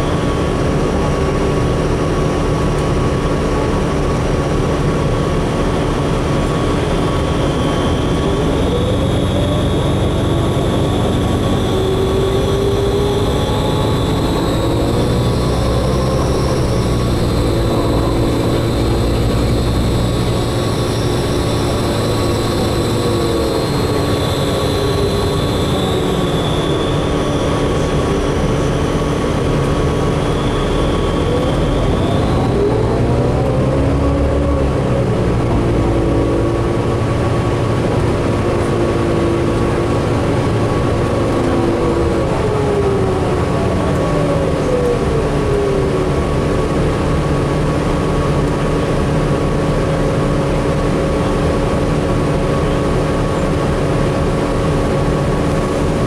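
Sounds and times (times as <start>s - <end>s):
bus engine rumble: 0.0s - 56.0s
hybrid drive whine: 0.0s - 56.0s.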